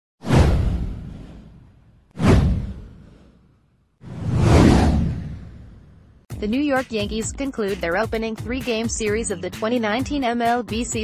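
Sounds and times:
deep boom: 0:00.2 - 0:03.2
whoosh sound effect: 0:00.2 - 0:03.4, 0:04.0 - 0:06.1.

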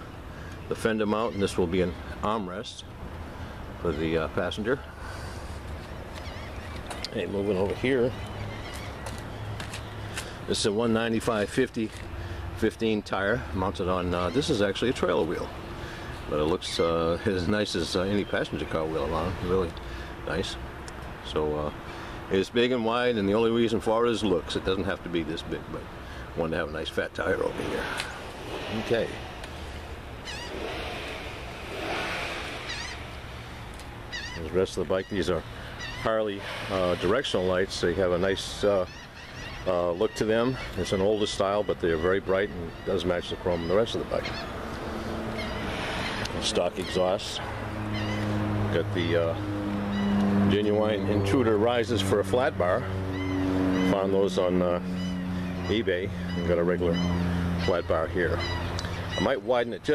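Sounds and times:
wavering bird calls: 0:00.0 - 0:11.4, 0:13.2 - 0:20.6, 0:25.4 - 0:59.9
low rumble: 0:27.4 - 0:34.2.

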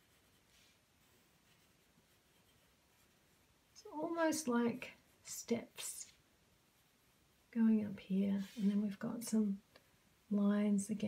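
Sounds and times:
pencil scratching on paper: 0:00.0 - 0:03.4.

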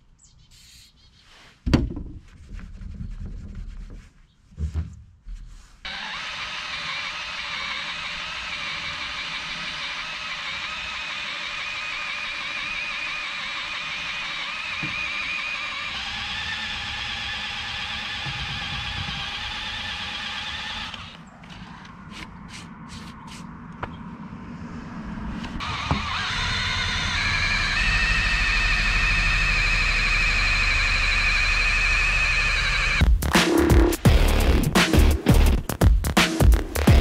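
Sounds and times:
power tool buzzing whine: 0:05.9 - 0:21.9, 0:25.6 - 0:33.0.

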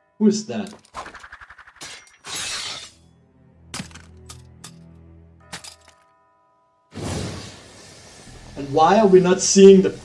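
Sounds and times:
low music drone: 0:07.7 - 0:10.0.

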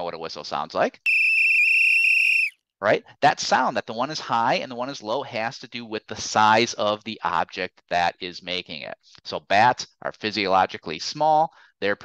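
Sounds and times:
whistle blown: 0:01.1 - 0:02.6.

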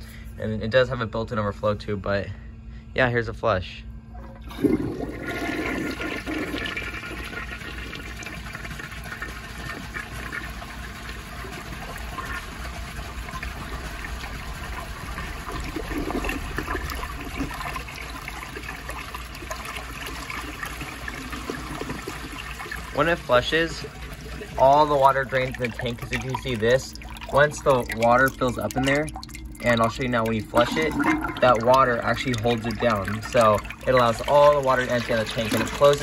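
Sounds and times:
toilet flushing water rush: 0:04.2 - 0:36.0.

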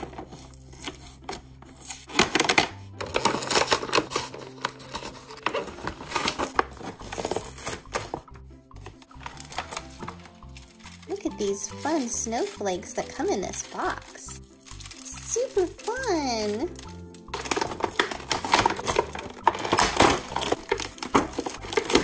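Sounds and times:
background music: 0:00.0 - 0:22.0
plastic packaging crinkling: 0:00.0 - 0:22.0.

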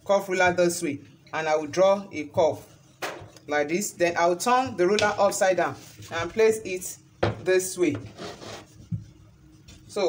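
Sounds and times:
plastic ruler rubbing across fabric: 0:08.1 - 0:08.9.

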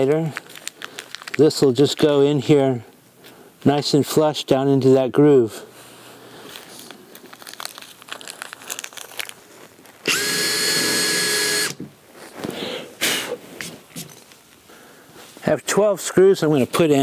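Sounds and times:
cordless drill whining: 0:10.0 - 0:11.8.

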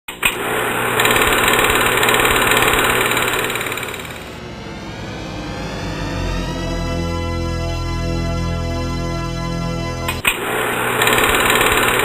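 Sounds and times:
film projector rattling: 0:00.6 - 0:04.4, 0:10.6 - 0:12.0.

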